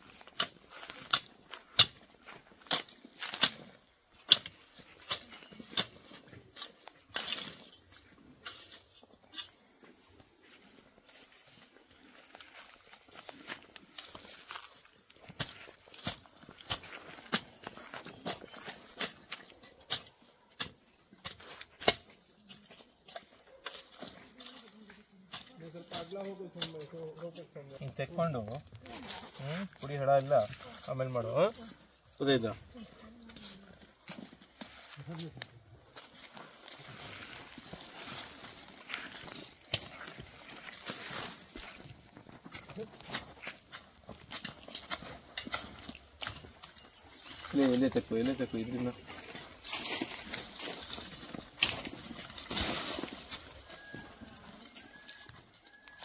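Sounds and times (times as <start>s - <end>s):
hand hoe chopping into soil: 0.2s - 7.8s, 15.3s - 24.2s, 49.2s - 53.5s.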